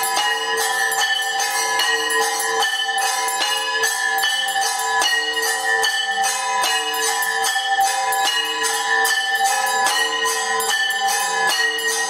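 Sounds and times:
brass bells rung rapidly: 0:00.0 - 0:12.0.

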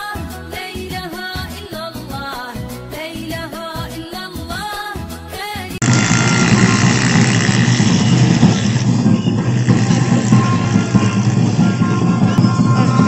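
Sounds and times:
music: 0:00.0 - 0:05.8, 0:07.2 - 0:13.0
large street crowd din: 0:05.8 - 0:13.0.

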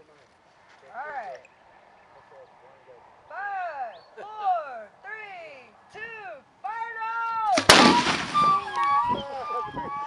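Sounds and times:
mortar boom with echo: 0:07.6 - 0:08.6.

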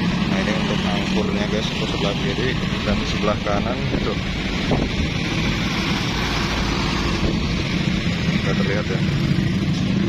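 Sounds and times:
road traffic noise: 0:00.0 - 0:10.0
wind rumbling on microphone: 0:03.8 - 0:08.4.

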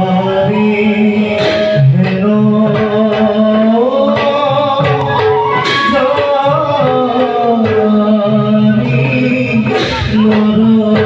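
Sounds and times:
men singing devotional music: 0:00.0 - 0:11.0
sharp percussion strokes: 0:01.1 - 0:08.1.

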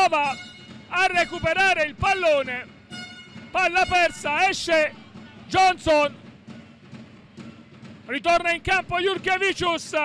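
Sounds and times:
murmur of crowd in hall: 0:00.0 - 0:08.2
drumming: 0:00.0 - 0:10.0
faint music: 0:00.0 - 0:10.0.

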